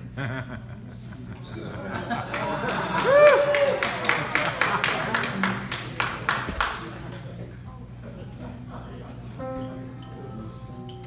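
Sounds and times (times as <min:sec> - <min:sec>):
audience applause: 0:02.2 - 0:07.0.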